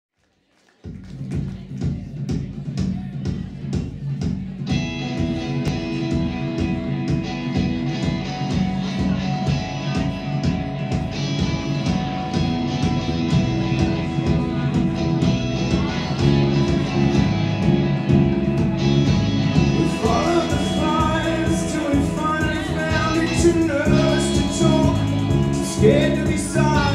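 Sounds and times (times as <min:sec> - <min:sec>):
live band playing: 0:04.6 - 0:26.9.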